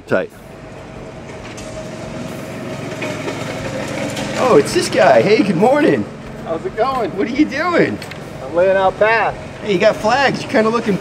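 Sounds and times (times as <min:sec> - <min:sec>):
trencher engine droning with whine: 0:00.0 - 0:11.0.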